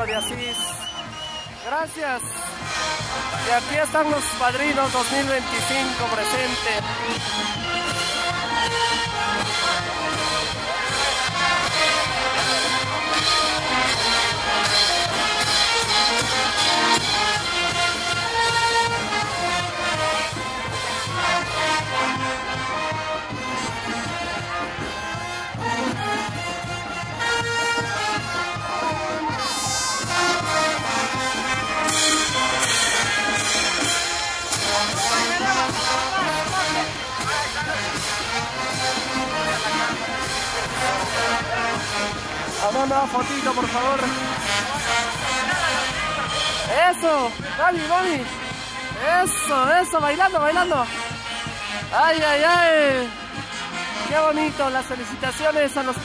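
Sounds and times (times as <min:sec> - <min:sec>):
brass band playing dance music: 0:00.0 - 0:56.0
crowd voices: 0:00.0 - 0:56.0.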